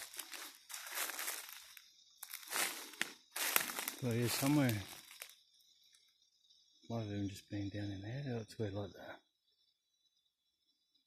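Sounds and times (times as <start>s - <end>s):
faint forest ambience: 0.0s - 11.0s
man speaking: 4.0s - 4.9s, 6.9s - 9.2s.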